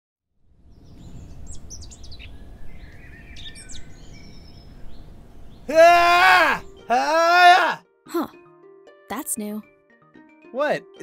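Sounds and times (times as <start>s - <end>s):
birds chirping and whistling: 0.7s - 7.6s.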